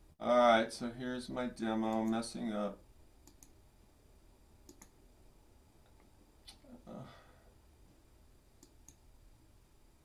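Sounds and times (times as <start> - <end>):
computer mouse clicks: 1.9 - 2.2, 3.2 - 3.6, 4.7 - 5.0, 8.6 - 9.1.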